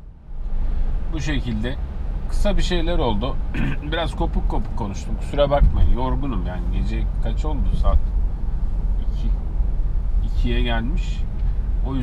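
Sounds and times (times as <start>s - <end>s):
car cabin engine and tyre noise: 0.0s - 12.0s.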